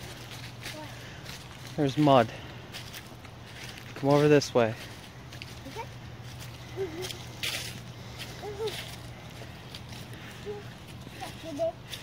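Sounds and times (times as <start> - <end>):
footsteps on wet leaves and mud: 0.0 - 12.0.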